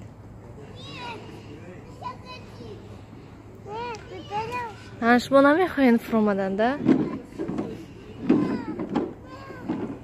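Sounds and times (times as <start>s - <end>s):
children calling: 0.5s - 5.2s, 6.8s - 10.0s.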